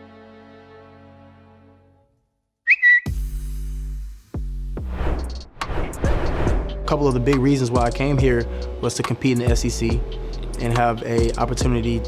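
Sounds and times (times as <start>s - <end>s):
loud whistle blast: 2.7s - 3.2s.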